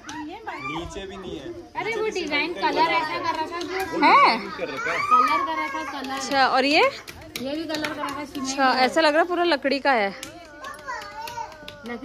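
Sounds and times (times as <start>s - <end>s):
children and women talking: 0.0s - 12.0s.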